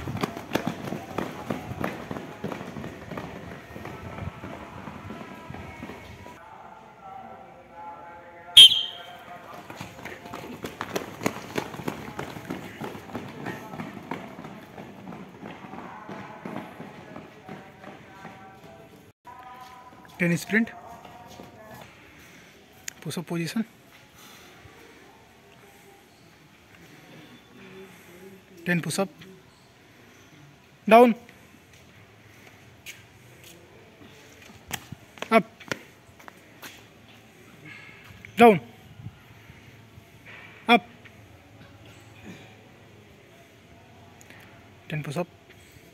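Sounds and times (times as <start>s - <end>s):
running footsteps on brick: 0.0s - 6.4s, 8.6s - 19.1s.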